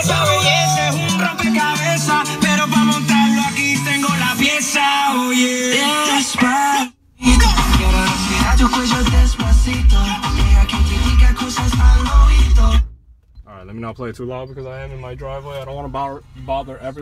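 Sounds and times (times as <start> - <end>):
melodic music on car stereo: 0.0 - 13.4
bass-heavy music on car stereo: 0.0 - 17.0.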